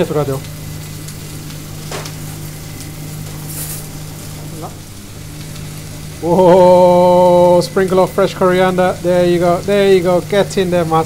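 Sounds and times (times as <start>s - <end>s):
meat sizzling on hot plate: 0.0s - 11.0s
ghee spitting on hot iron: 0.1s - 10.3s.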